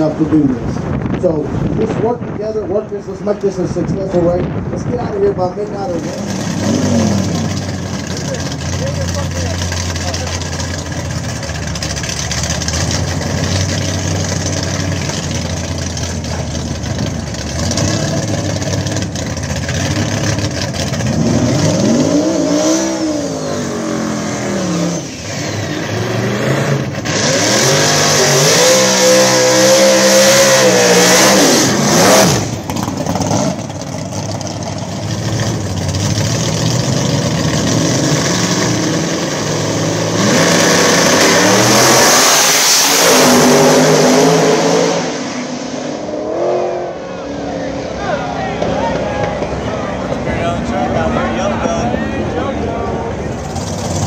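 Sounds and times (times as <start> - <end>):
race cars launching: 0.0 - 54.0
tires spinning in burnout: 2.7 - 54.0
engine revving in blips: 6.0 - 34.2.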